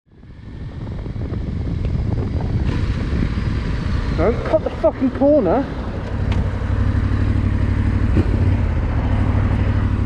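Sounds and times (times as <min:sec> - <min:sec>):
wind rumble on microphone: 0:00.1 - 0:06.7, 0:07.9 - 0:10.0
motorcycle engine running: 0:00.1 - 0:10.0.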